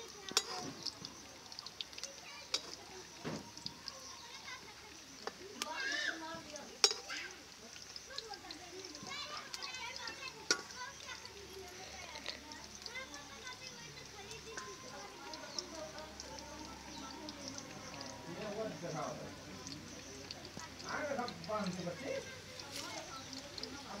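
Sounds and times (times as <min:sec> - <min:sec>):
chatter of people and children: 0:00.0 - 0:24.0
food frying in hot oil: 0:00.0 - 0:24.0.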